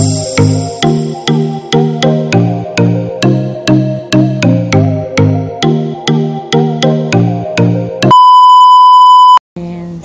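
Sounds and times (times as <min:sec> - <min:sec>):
electronic beep tone: 0:08.1 - 0:09.4.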